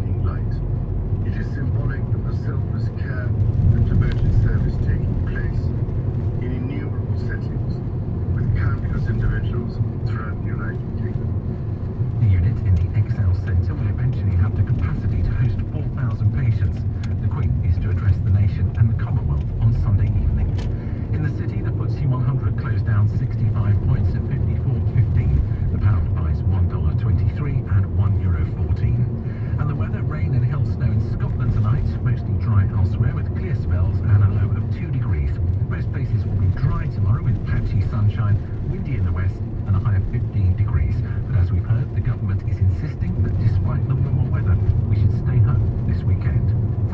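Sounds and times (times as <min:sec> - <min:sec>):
faint radio talk: 0:00.0 - 0:11.4, 0:12.0 - 0:46.9
car cabin driving rumble: 0:00.0 - 0:46.9.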